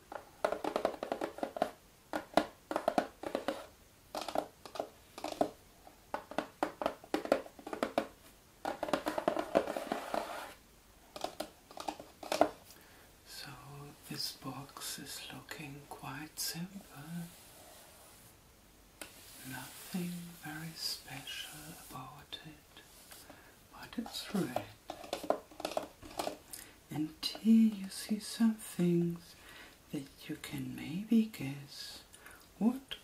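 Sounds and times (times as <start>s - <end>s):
woman speaking softly: 13.3s - 17.4s, 19.4s - 22.6s, 23.7s - 24.8s.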